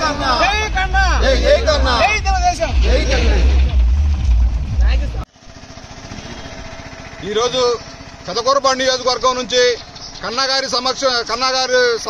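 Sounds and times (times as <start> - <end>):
men calling out loudly: 0.0 - 3.9
heavy low rumble: 0.0 - 5.6.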